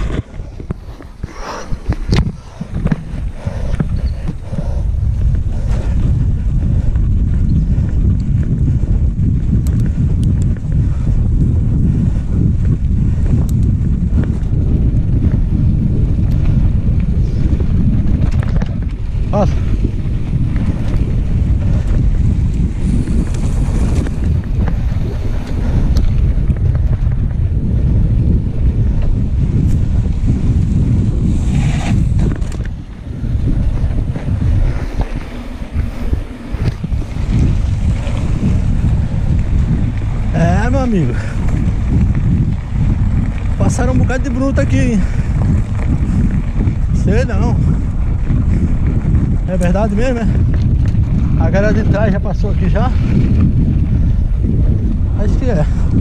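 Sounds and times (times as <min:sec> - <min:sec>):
bike clicks and rattles: 0:00.0 - 0:56.0
wind buffeting microphone: 0:00.0 - 0:56.0.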